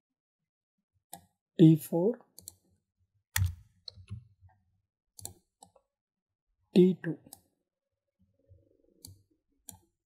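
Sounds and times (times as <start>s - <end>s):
computer mouse clicks: 2.4s - 2.6s, 3.4s - 4.3s, 5.2s - 5.8s, 9.0s - 10.0s.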